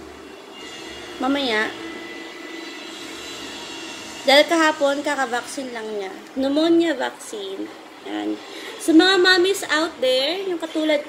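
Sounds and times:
faint thin whine: 0.0s - 11.0s
steady background hum: 0.0s - 11.0s.

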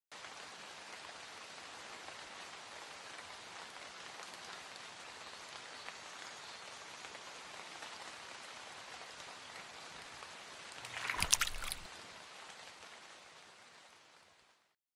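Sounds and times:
rain falling on puddle and gravel: 0.1s - 14.7s.

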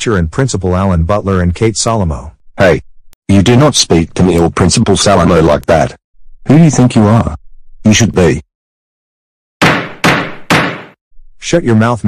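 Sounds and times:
gavel knocks ringing: 9.6s - 11.0s.

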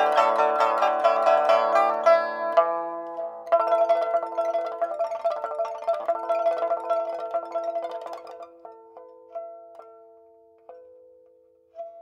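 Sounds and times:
plucked lute notes: 0.0s - 12.0s.

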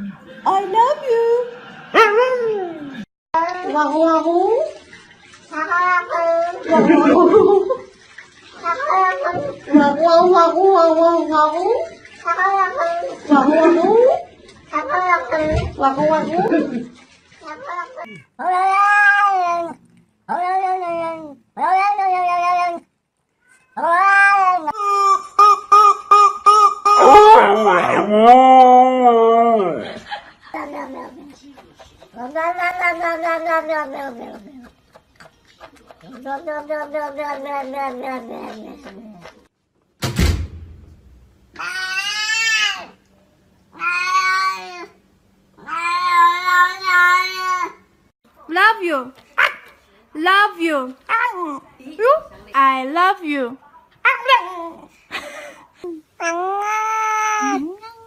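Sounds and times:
cat meowing: 17.5s - 24.7s, 32.2s - 34.7s, 43.7s - 44.9s.

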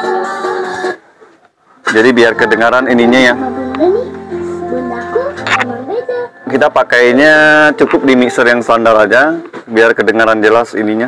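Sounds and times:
music with sustained chords: 1.9s - 8.8s.

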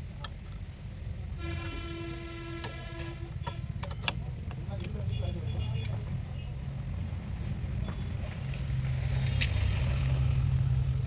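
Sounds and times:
horn long steady note: 1.3s - 3.8s.

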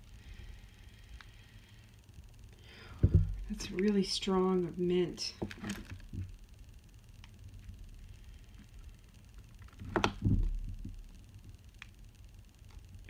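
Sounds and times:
low room hum: 0.0s - 13.0s
faint ticks: 1.0s - 1.4s.

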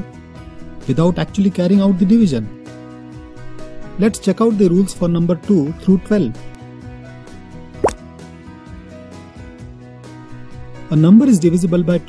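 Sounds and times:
light background music: 0.0s - 12.0s
upward-gliding cartoon plop: 7.8s - 8.0s.

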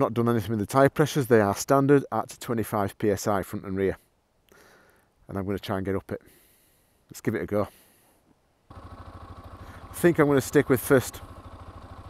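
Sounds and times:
motorcycle engine running: 8.7s - 12.0s.

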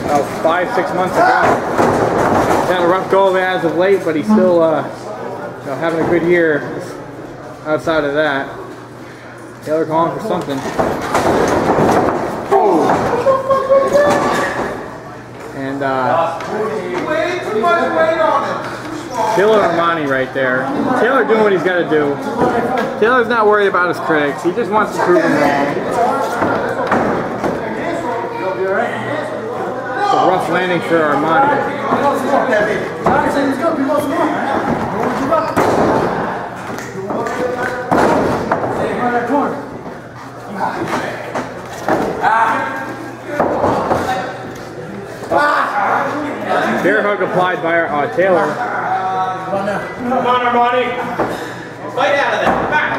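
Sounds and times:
voices: 0.0s - 52.9s.

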